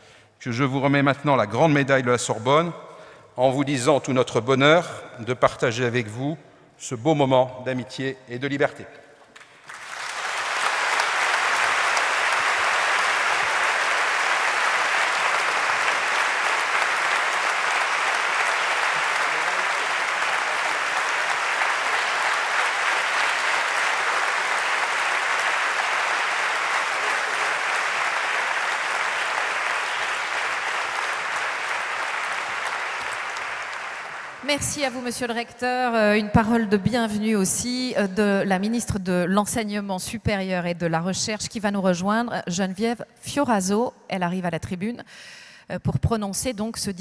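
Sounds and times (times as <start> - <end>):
audience applauding: 9.4 - 35.1.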